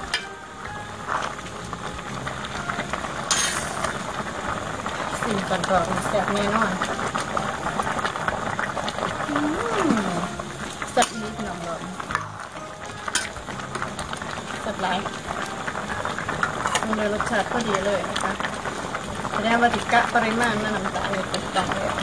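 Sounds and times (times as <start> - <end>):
curry bubbling in a pot: 0.0 - 22.0
ladle stirring in a pot: 1.0 - 9.4, 10.0 - 22.0.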